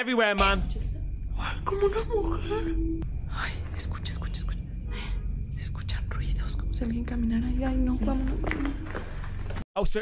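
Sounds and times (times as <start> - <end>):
low hum: 0.4 - 9.6
people whispering: 3.3 - 8.8.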